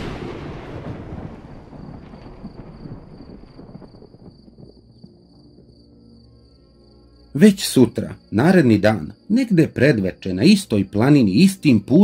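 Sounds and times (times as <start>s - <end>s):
deep booming hit with rumble: 0.0s - 5.2s
crickets chirring: 0.1s - 12.0s
soft sustained music notes: 4.8s - 12.0s.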